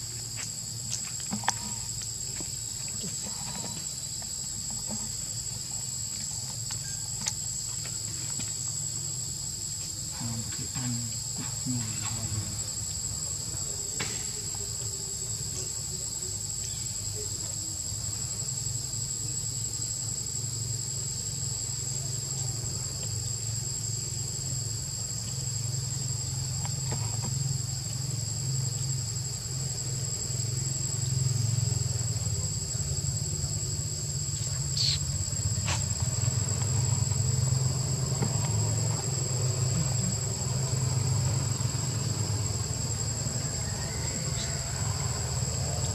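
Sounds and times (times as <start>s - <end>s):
insects buzzing: 0.0s - 45.9s.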